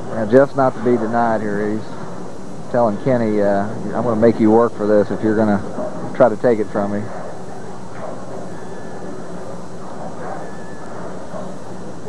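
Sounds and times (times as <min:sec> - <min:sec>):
faint crowd murmur: 0:00.0 - 0:12.0
low rumble and hum: 0:00.0 - 0:12.0.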